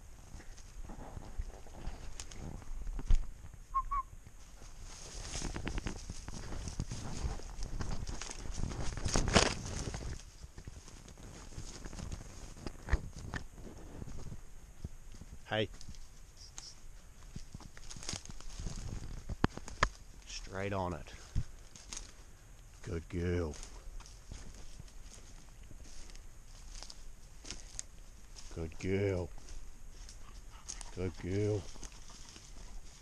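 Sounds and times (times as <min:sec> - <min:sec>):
footsteps in leaf litter: 0:04.4 - 0:12.6.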